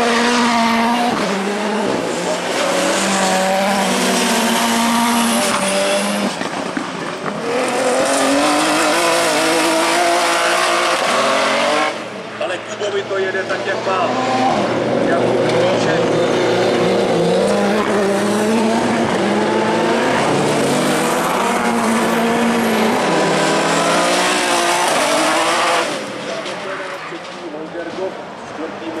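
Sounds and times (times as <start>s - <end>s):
buggy engine revving: 0.0s - 12.2s, 13.6s - 26.7s.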